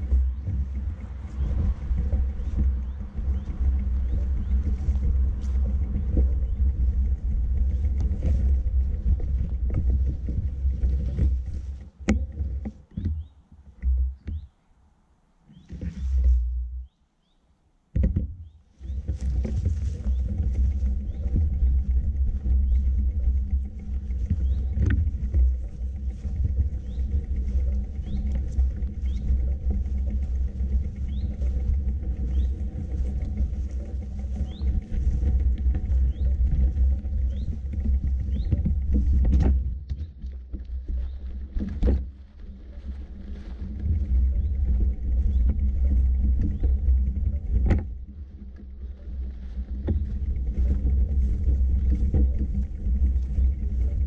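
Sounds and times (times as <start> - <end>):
wind buffeting microphone: 0.0 - 14.6, 18.0 - 54.0.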